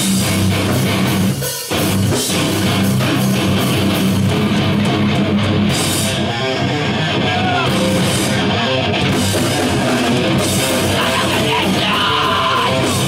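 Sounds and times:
distorted electric guitars: 0:00.0 - 0:13.0
drum kit: 0:00.0 - 0:13.0.

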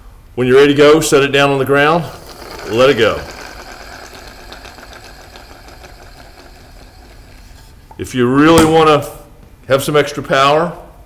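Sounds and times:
rubber band racer wheels rattling: 0:02.0 - 0:08.0.

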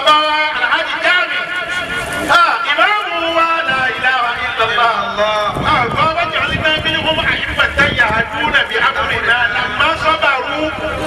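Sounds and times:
people talking: 0:00.0 - 0:01.6, 0:02.3 - 0:11.0.

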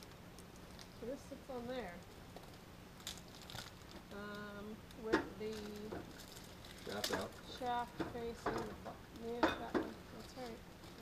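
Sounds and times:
plastic wrapping crinkling: 0:00.0 - 0:01.1, 0:02.0 - 0:11.0.

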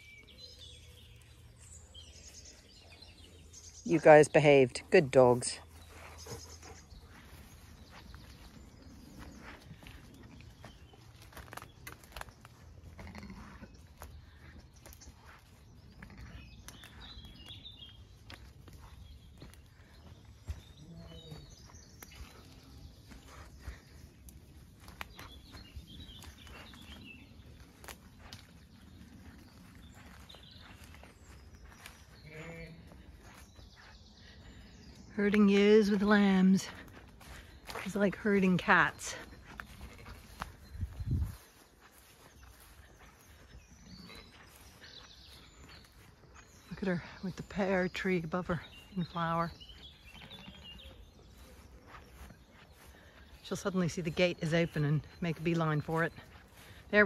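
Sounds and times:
footsteps through grass: 0:00.0 - 0:57.0
faint sheep bleats: 0:12.9 - 0:13.6.

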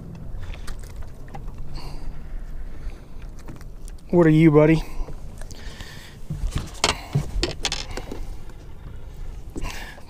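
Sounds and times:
low rumble: 0:00.0 - 0:10.0
handling clicks and knocks: 0:06.3 - 0:08.3.

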